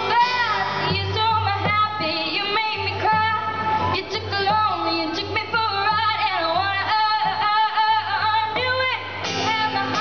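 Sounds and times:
acoustic guitar: 0.0s - 10.0s
girl singing into microphone: 0.0s - 10.0s.

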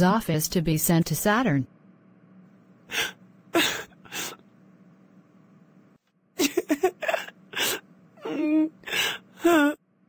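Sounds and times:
woman sobbing: 2.9s - 4.4s, 6.4s - 9.8s.

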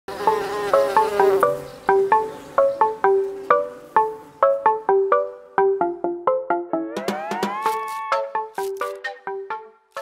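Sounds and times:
buzzing bee sound effect: 0.1s - 2.6s, 7.0s - 9.0s.

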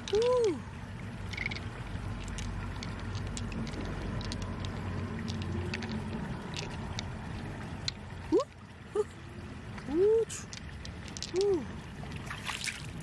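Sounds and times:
pearls clicking against shell: 0.0s - 0.6s, 1.2s - 8.6s, 10.4s - 11.6s
steady low rumble: 0.0s - 13.0s.

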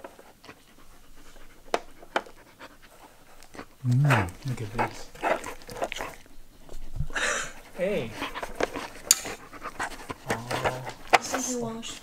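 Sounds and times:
dog breathing hard and sniffing: 0.0s - 12.0s
person speaking: 3.8s - 5.4s, 7.7s - 8.4s, 10.2s - 12.0s.

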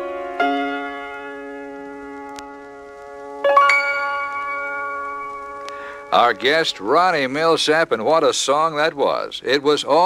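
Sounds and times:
piano chord: 0.0s - 7.0s.

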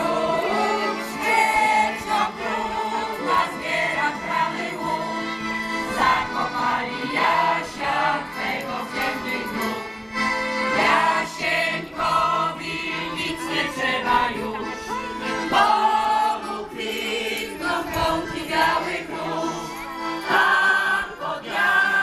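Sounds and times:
massed choir singing: 0.0s - 22.0s.

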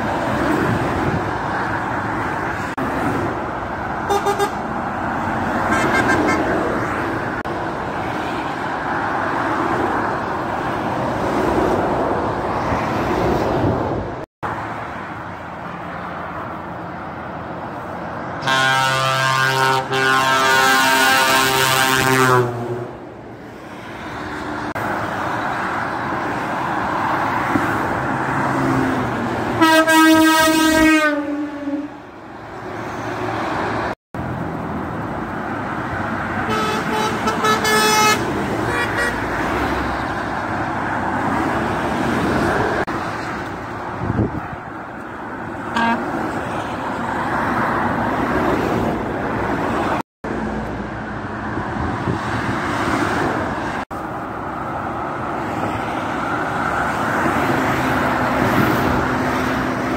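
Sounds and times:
motorway traffic rushing: 0.0s - 59.9s
lorry air horn blasts: 18.4s - 22.5s, 29.6s - 32.0s, 36.5s - 39.2s, 45.7s - 46.0s.

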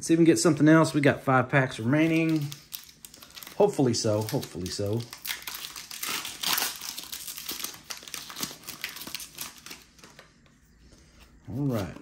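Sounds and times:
foil wrapper crinkling: 1.8s - 10.3s.

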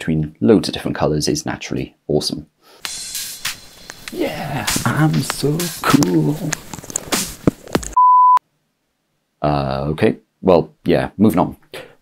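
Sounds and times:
electronic beep: 8.0s - 8.4s.

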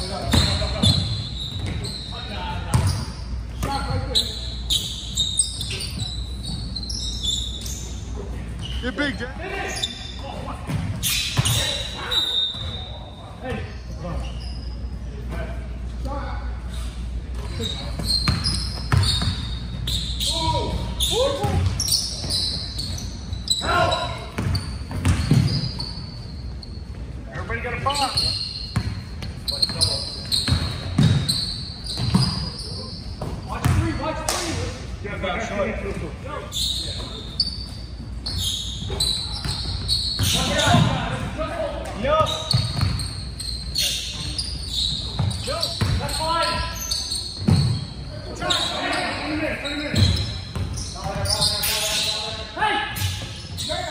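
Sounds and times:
sneakers squeaking: 0.0s - 53.9s
basketball bouncing on wooden floor: 18.0s - 19.4s, 24.4s - 25.7s, 30.5s - 31.3s, 32.0s - 32.5s, 33.2s - 33.8s, 42.5s - 43.0s, 47.4s - 47.8s.

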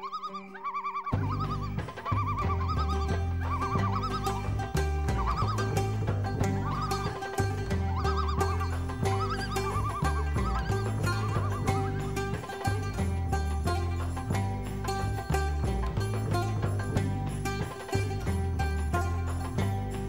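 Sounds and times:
high warbling melody: 0.0s - 20.0s
ticking beat: 1.1s - 20.0s
deep bass line: 1.2s - 20.0s.

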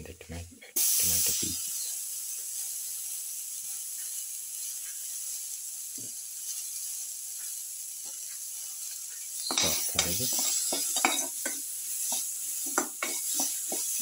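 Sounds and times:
food sizzling in hot oil: 0.8s - 14.0s.

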